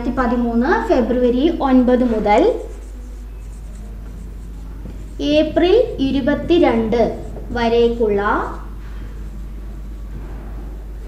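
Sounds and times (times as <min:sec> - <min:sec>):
woman speaking: 0:00.0 - 0:02.7, 0:05.2 - 0:08.7
marker scratching on whiteboard: 0:00.2 - 0:11.0.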